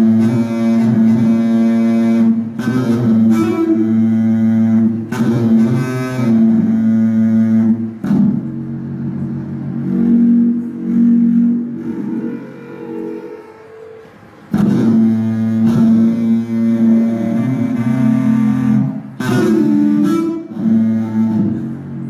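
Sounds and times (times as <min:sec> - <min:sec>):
low droning music notes: 0:00.0 - 0:22.0.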